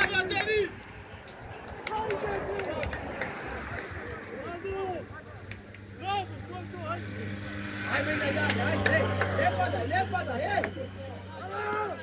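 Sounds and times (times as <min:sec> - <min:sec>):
voices shouting and calling out: 0:00.0 - 0:12.0.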